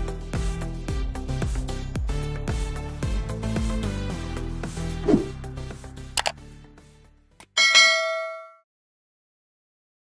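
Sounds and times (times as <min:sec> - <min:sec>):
bright bell ding: 0:07.5 - 0:08.6.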